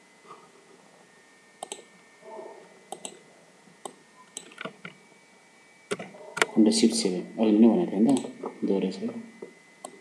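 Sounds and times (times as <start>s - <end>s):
computer mouse clicks: 1.6s - 1.9s, 2.9s - 3.2s, 3.8s - 5.0s, 8.1s - 8.3s.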